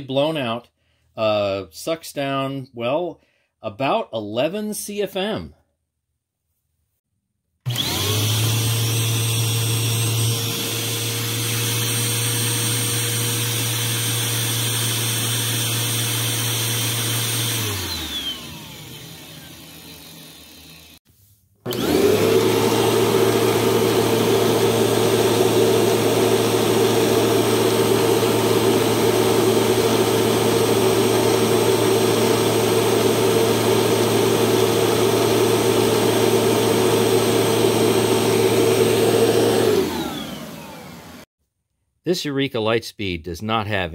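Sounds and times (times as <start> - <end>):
vacuum cleaner running: 7.7 - 21.0, 21.6 - 41.3
vacuum motor spinning down: 7.7 - 21.0, 21.7 - 41.3.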